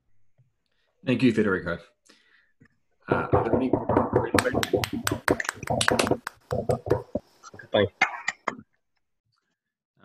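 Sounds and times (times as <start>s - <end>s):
overlapping voices: 3.1s - 7.2s
hand claps: 3.4s - 7.2s.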